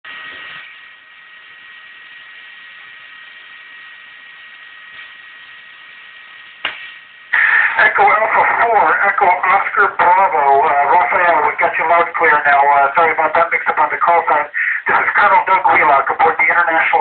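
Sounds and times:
radio scanner hiss with whine: 0:00.1 - 0:17.0
man's voice over radio: 0:07.4 - 0:17.0.

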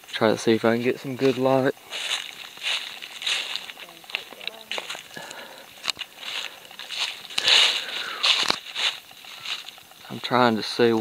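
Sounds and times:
footsteps through grass and leaves: 0:00.0 - 0:11.0.

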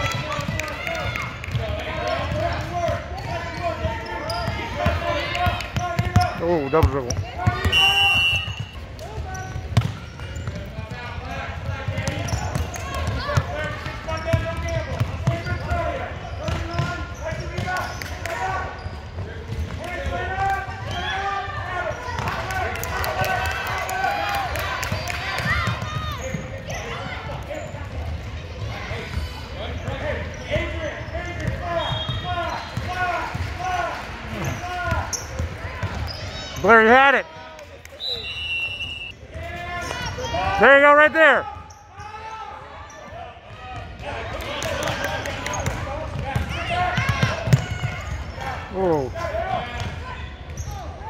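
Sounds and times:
crowd talking and calling out: 0:00.0 - 0:51.0.

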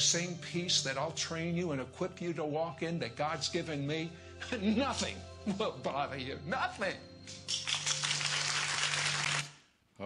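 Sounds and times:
audience applauding: 0:07.4 - 0:09.6.

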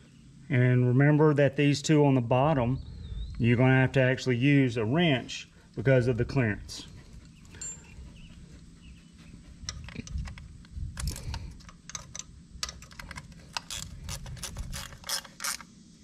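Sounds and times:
low steady hum: 0:00.0 - 0:16.0
wrench clicking on bolt: 0:11.0 - 0:15.7.

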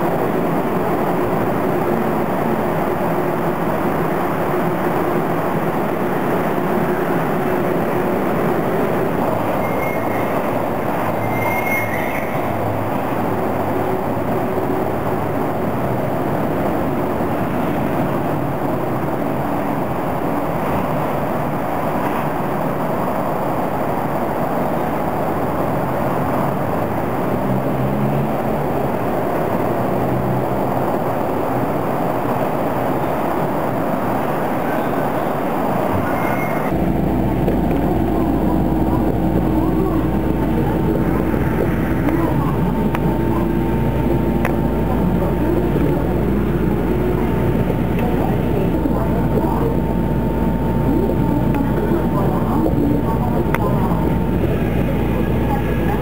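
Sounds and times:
monorail train rumble: 0:00.0 - 0:56.0
faint short high squeaks: 0:09.6 - 0:10.4, 0:11.2 - 0:12.5, 0:35.9 - 0:36.7.

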